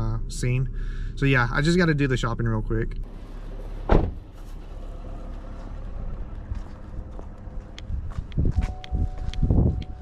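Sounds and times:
outdoor background hum: 0.0 - 10.0
loud thump: 3.8 - 4.3.

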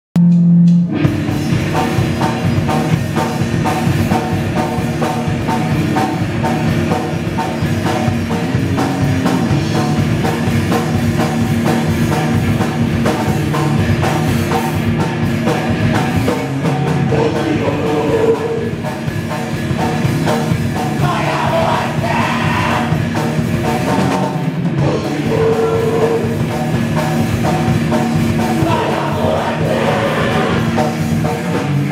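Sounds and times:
distorted electric guitar: 0.2 - 31.9
drum kit: 0.2 - 31.9.

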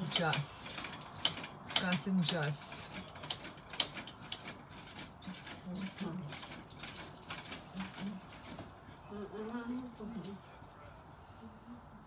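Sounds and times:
faint ticking and rustling: 0.0 - 10.8.

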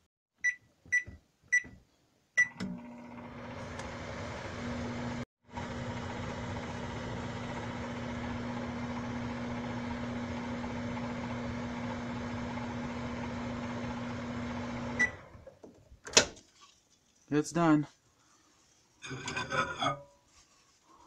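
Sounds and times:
microwave oven humming: 2.4 - 15.5.

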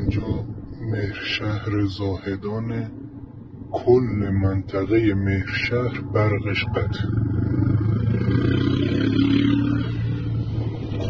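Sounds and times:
steady low hum: 0.0 - 11.0
vehicle engine running: 0.0 - 11.0.

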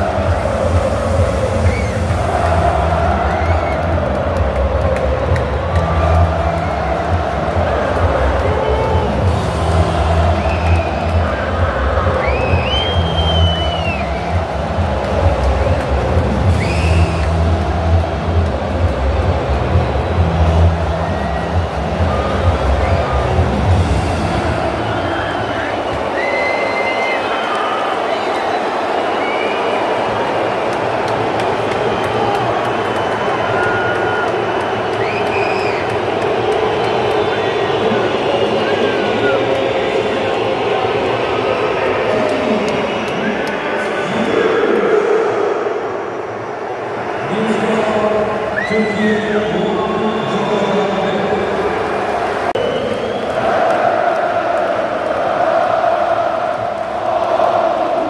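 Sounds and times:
stadium crowd chanting and singing: 0.0 - 58.0
shrill whistles: 12.2 - 14.4, 16.6 - 17.3, 24.9 - 30.0, 34.9 - 35.9, 52.6 - 53.6.

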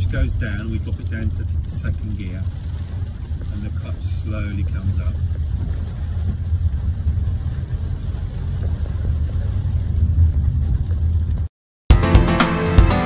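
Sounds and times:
car engine running: 0.0 - 11.5
road rumble: 0.0 - 11.5.

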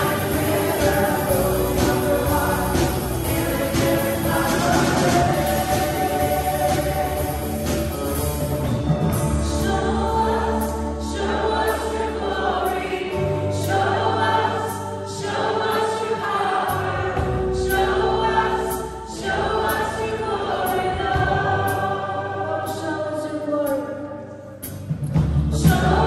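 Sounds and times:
drum kit with cymbal strokes: 0.0 - 12.0
person singing: 0.0 - 24.6
acoustic and electric guitars: 0.0 - 26.0
bass guitar: 0.0 - 26.0.

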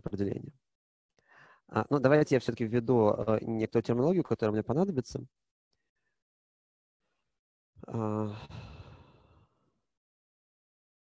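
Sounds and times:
man sighing: 7.8 - 9.4.

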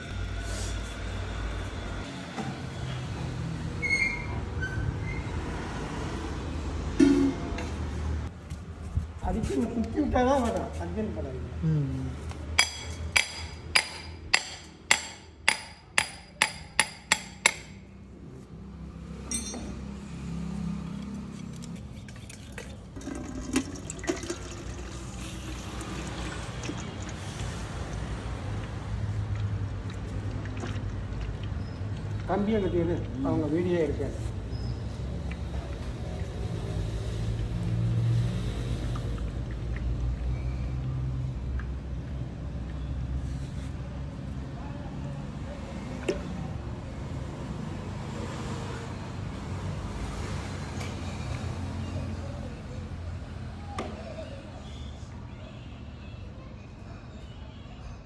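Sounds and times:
hammer striking steel rod: 12.6 - 17.8
faint metallic clink: 19.3 - 19.8
oil streaming into steel pot: 21.4 - 28.8, 29.8 - 32.2
oil press humming: 21.5 - 27.2.

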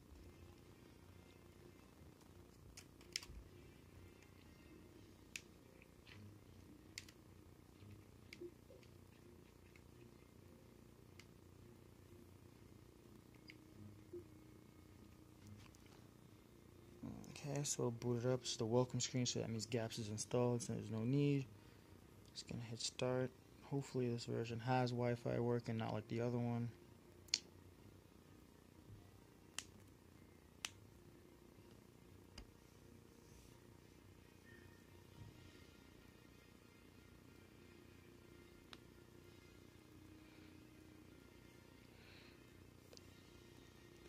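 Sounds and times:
low room rumble: 0.0 - 44.0.

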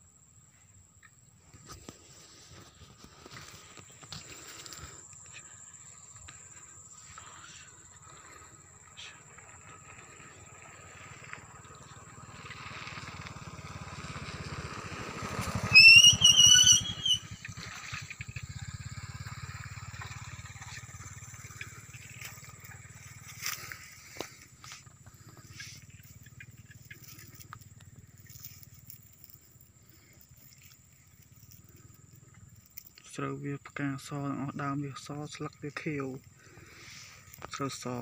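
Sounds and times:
insect drone: 0.0 - 38.0
pulsing engine hum: 1.5 - 38.0
high-pitched call: 15.7 - 17.4.

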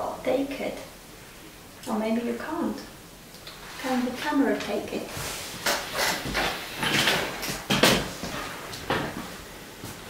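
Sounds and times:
rustling and bumping: 3.7 - 10.0.

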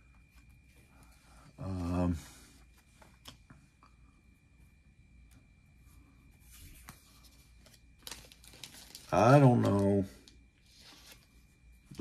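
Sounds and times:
soft rustle of cards: 0.0 - 12.0.

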